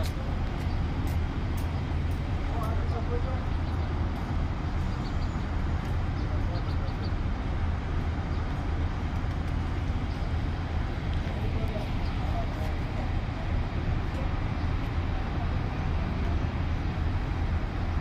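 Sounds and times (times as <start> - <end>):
engines idling: 0.0 - 18.0
street traffic rumble: 0.0 - 18.0.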